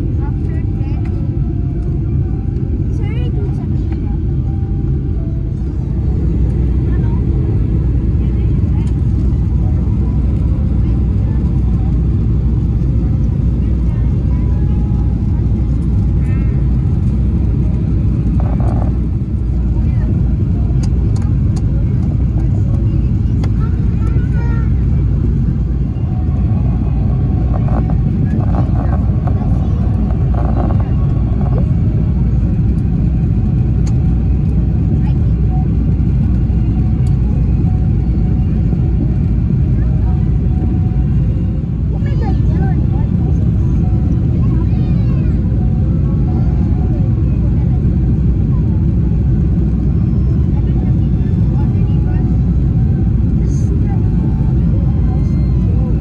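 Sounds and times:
airliner engines rumbling: 0.0s - 56.0s
faint voices: 0.0s - 56.0s.

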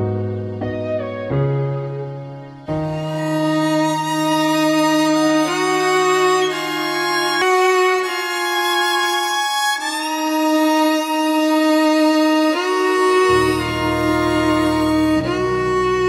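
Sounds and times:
lower accompaniment: 0.0s - 16.0s
violin playing long notes: 0.0s - 16.0s.

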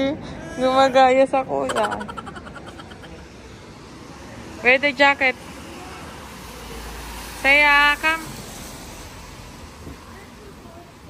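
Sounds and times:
road traffic hiss: 0.0s - 11.0s.

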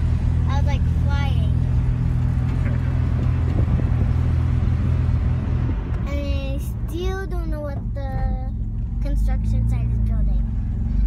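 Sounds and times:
car engine drone: 0.0s - 11.0s
road and wind noise: 0.0s - 11.0s.

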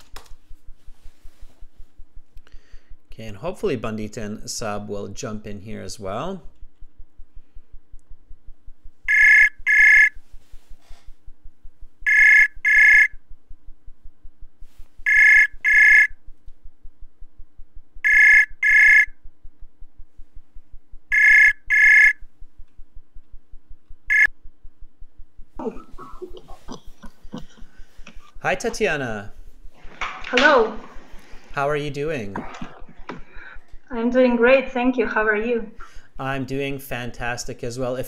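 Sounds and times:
phone ringback tone: 9.1s - 10.2s, 12.1s - 13.2s, 15.0s - 16.2s, 18.0s - 19.1s, 21.1s - 22.2s.

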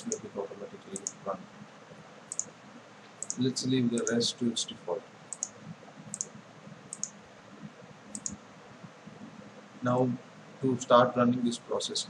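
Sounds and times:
computer mouse clicking: 0.0s - 0.3s, 0.9s - 1.2s, 2.3s - 2.5s, 3.2s - 4.2s, 5.3s - 8.4s
faint room hiss: 0.0s - 12.0s.

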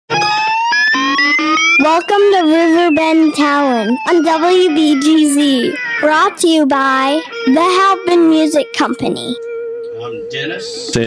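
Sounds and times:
tone rising in pitch: 0.1s - 10.5s
man speaking: 10.0s - 11.0s.

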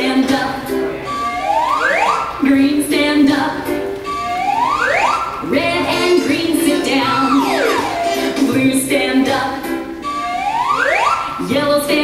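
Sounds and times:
children's action song: 1.1s - 9.8s
pitched sound sliding upward: 7.2s - 8.5s.

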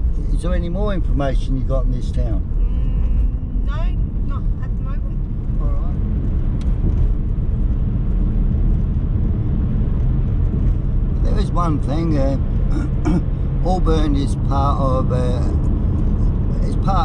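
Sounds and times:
car driving low rumble: 0.0s - 17.0s.

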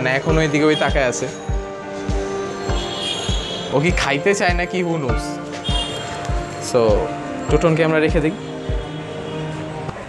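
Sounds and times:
sung melody: 0.0s - 9.9s
thumping music beat: 0.0s - 9.9s.

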